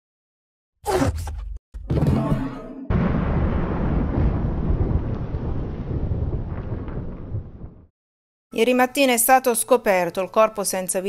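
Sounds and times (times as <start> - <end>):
thunder-like rumble: 2.9 - 7.9.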